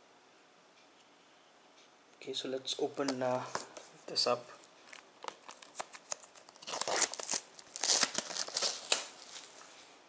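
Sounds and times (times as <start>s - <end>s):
plastic wrap crackling: 4.5s - 9.8s.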